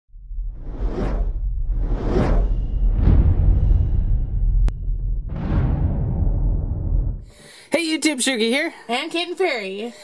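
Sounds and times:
deep steady rumble: 0:00.1 - 0:07.3
cinematic whoosh: 0:00.2 - 0:07.3.

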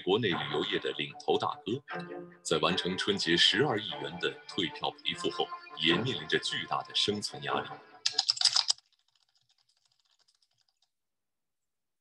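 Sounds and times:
keyboard typing clicks: 0:08.1 - 0:10.8.

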